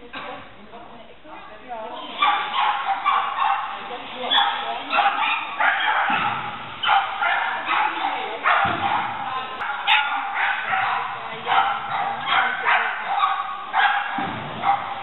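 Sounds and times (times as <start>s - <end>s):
dog barking high-pitched: 2.0s - 15.0s.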